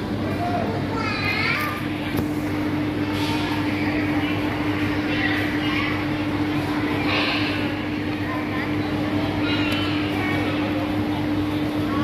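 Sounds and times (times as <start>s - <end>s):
faint chatter of shoppers: 0.0s - 12.0s
steady mechanical hum: 0.0s - 12.0s.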